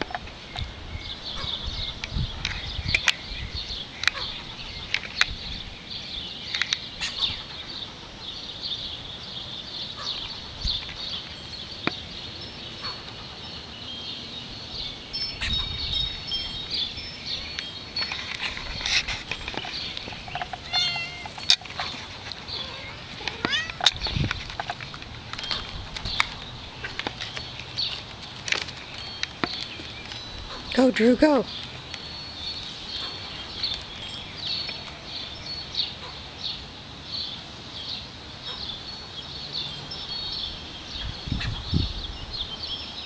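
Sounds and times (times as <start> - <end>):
cat meowing: 20.6 - 21.3, 22.6 - 23.9.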